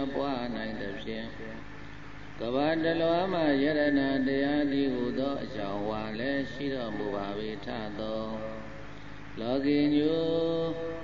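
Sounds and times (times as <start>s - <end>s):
man chanting: 0.0s - 1.7s, 2.4s - 11.0s.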